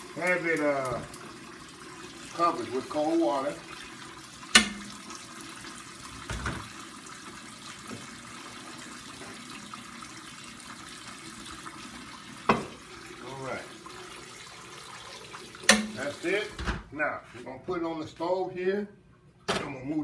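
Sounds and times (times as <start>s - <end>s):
faucet running into pot: 0.0s - 16.6s.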